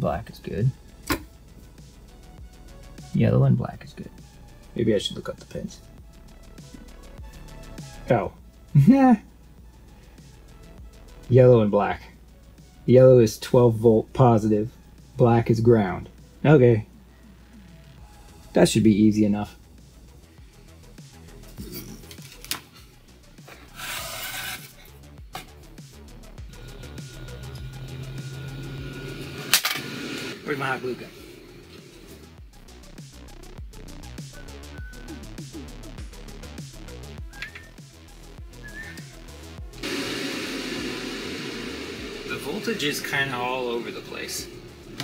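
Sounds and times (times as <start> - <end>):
faint background music: 0.0 - 39.8, 41.5 - 45.0
fan scraping rub: 23.4 - 25.0.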